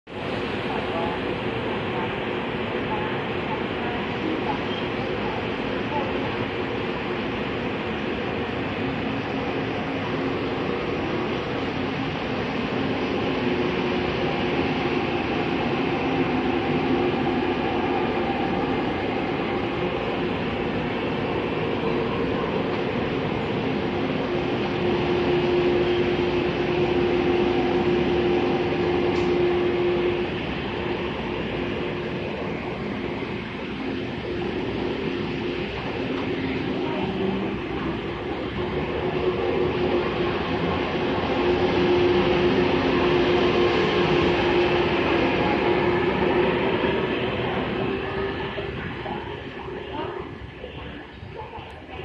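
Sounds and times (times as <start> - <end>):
electric train running hum: 0.1 - 52.0
steady tones in the hum: 0.1 - 52.0
wheel-on-rail noise: 0.1 - 52.0.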